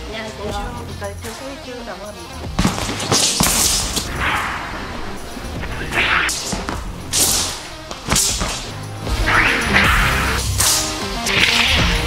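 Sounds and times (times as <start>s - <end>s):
background music: 0.0s - 12.0s
sword swishing through air: 3.2s - 10.0s.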